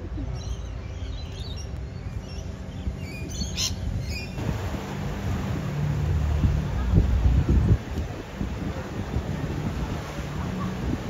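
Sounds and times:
low hum: 0:00.0 - 0:11.0
wind and surf: 0:00.0 - 0:11.0
small birds chirping: 0:00.2 - 0:04.4.

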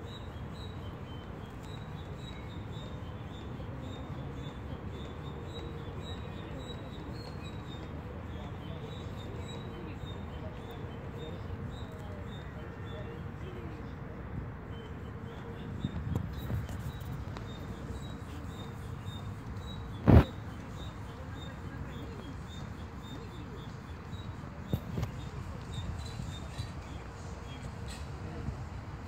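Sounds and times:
outdoor background noise: 0:00.0 - 0:29.0.

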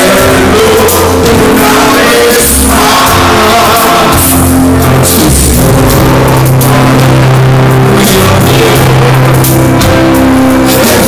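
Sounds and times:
bass guitar: 0:00.0 - 0:11.0
drum kit: 0:00.0 - 0:11.0
keyboards: 0:00.0 - 0:11.0.

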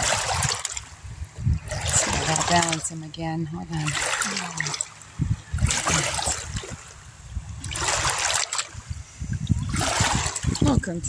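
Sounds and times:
river water splashing over rocks: 0:00.0 - 0:01.0, 0:01.7 - 0:08.8, 0:09.6 - 0:10.8
low rumble: 0:00.0 - 0:11.0.

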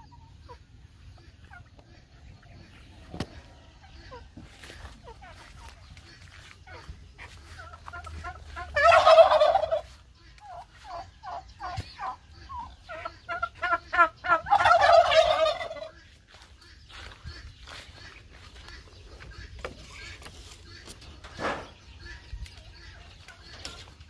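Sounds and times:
short repeated turkey calls: 0:00.0 - 0:22.2
turkeys gobbling: 0:00.0 - 0:24.0.

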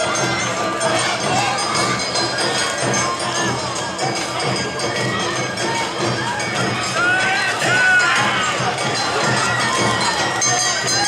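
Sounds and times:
dancers shouting calls: 0:00.0 - 0:11.0
festival music: 0:00.0 - 0:11.0
noisy crowd: 0:00.0 - 0:11.0.

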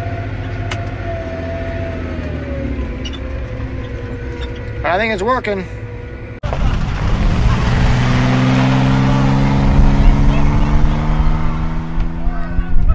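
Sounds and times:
engine at high revs: 0:00.0 - 0:12.5.

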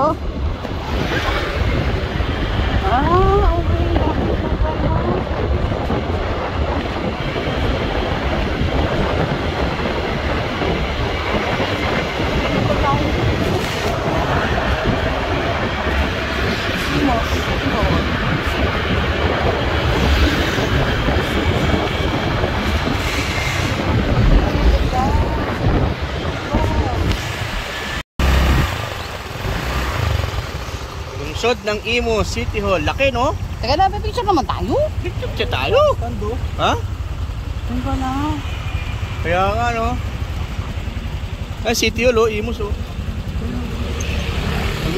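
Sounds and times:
road noise: 0:00.0 - 0:44.9
vehicles passing: 0:00.0 - 0:44.9
wind rumbling on microphone: 0:00.0 - 0:44.9.

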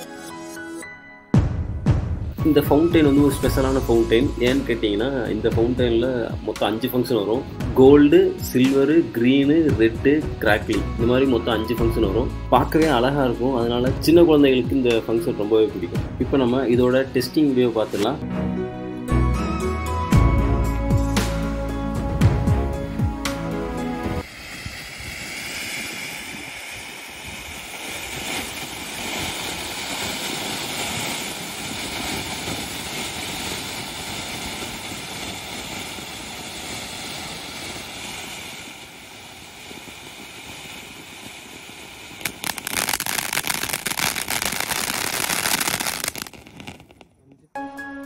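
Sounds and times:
firework crackling: 0:01.6 - 0:18.2, 0:24.2 - 0:47.3
firework fountain hissing: 0:02.5 - 0:15.8, 0:24.2 - 0:47.2.

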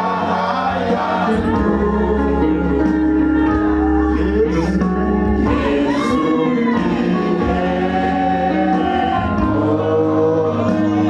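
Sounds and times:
group of voices singing: 0:00.0 - 0:11.0
man singing into microphone: 0:00.0 - 0:11.0.

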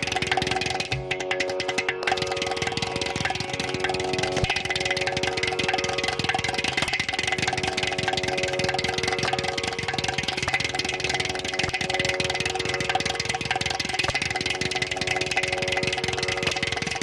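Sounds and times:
clay pot drum played fast: 0:00.0 - 0:17.0
steady drone: 0:00.0 - 0:17.0.

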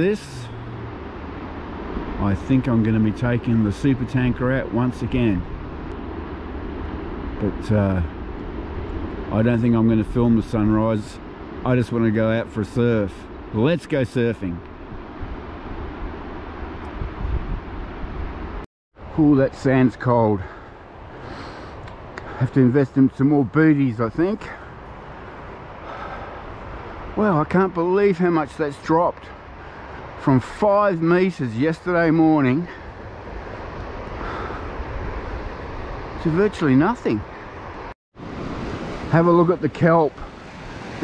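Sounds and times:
wind buffeting microphone: 0:00.0 - 0:18.6
surf breaking on beach: 0:38.2 - 0:41.0.

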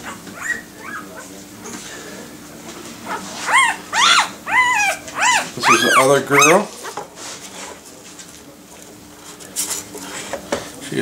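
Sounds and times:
puppy scratching on plastic tray: 0:02.8 - 0:08.4.

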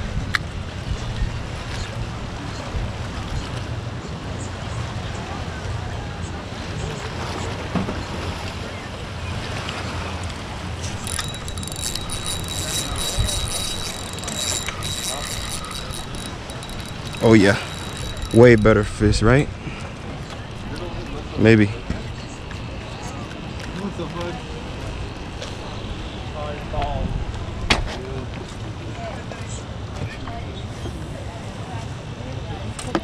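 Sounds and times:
fishing reel whirring and clicking: 0:10.8 - 0:19.5.

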